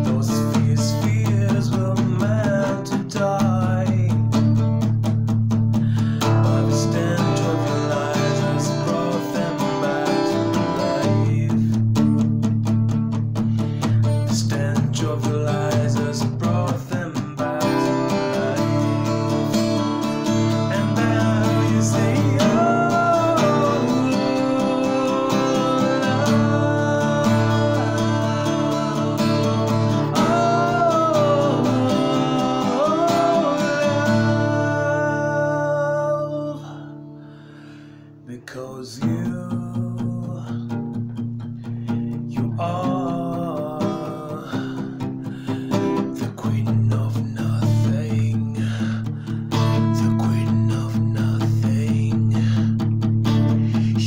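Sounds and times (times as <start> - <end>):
man singing softly: 0.0 - 4.8, 5.8 - 12.3, 13.8 - 37.6, 38.2 - 40.9, 42.0 - 52.9, 53.5 - 54.0
acoustic guitar strumming: 0.0 - 54.0.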